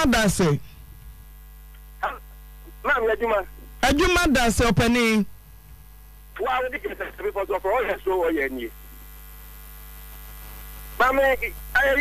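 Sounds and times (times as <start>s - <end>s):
electrical mains hum: 0.0s - 12.0s
person speaking: 6.4s - 8.7s.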